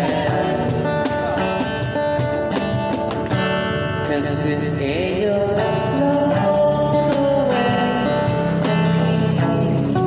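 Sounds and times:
acoustic guitar strumming: 0.0s - 10.0s
cajon beat: 0.0s - 10.0s.

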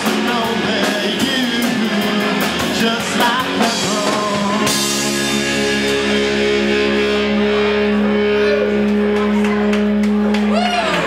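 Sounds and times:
rock band chord ringing: 0.0s - 11.0s.

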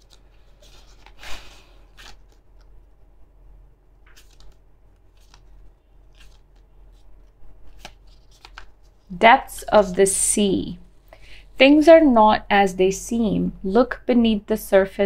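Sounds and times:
book pages flipping: 0.0s - 3.0s, 4.0s - 10.1s.

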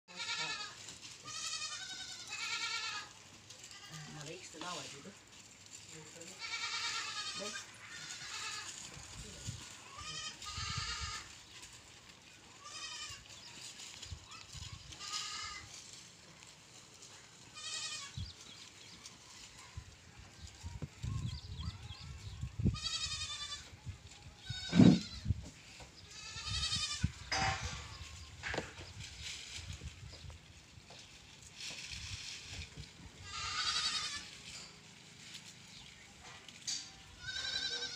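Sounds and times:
goats bleating: 0.1s - 4.9s, 6.2s - 9.0s, 9.6s - 11.4s, 12.4s - 15.9s, 17.0s - 18.2s, 22.7s - 23.8s, 24.4s - 25.3s, 26.0s - 28.1s, 33.2s - 34.6s, 36.8s - 37.9s.

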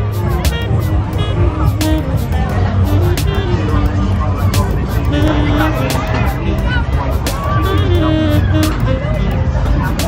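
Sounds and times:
crowd voices: 0.0s - 10.0s
loud music: 0.0s - 10.0s.

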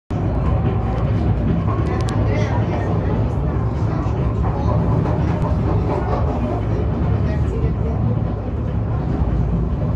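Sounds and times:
funicular car rumbling: 0.1s - 9.9s.

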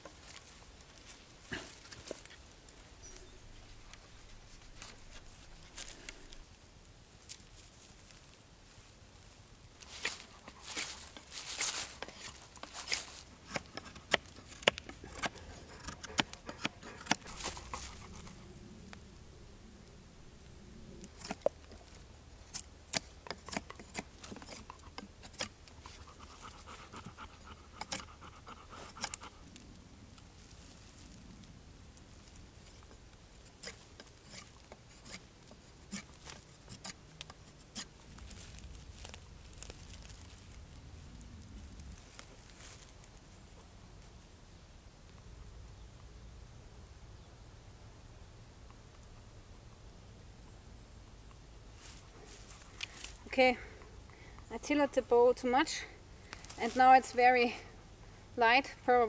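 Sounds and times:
knife scraping wood: 9.8s - 18.5s, 21.0s - 29.4s, 32.6s - 38.0s.

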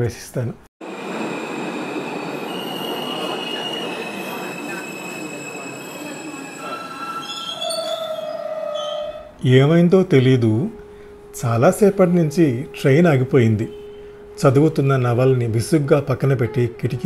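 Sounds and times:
train rolling on rails: 0.8s - 8.2s
train wheel squeals: 0.9s - 9.4s, 10.2s - 14.7s.

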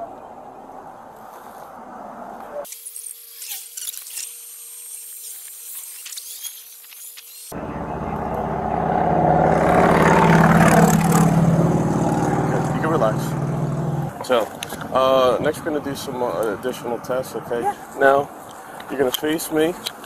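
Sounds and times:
vehicle engine and road noise: 0.0s - 2.7s, 7.5s - 20.0s.

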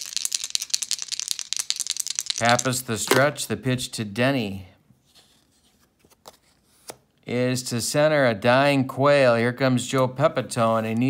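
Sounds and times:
plastic dice rattling: 0.0s - 3.3s.

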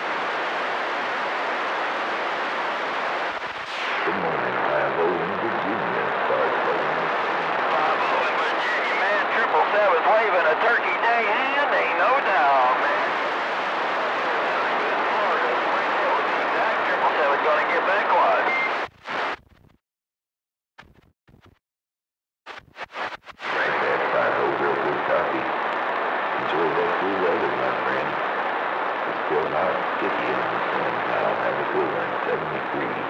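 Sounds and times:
radio static: 0.0s - 19.7s, 22.5s - 33.0s
crackling bursts: 0.0s - 19.8s, 22.5s - 33.0s
garbled radio voices: 4.0s - 19.3s, 22.9s - 28.4s, 29.0s - 33.0s.

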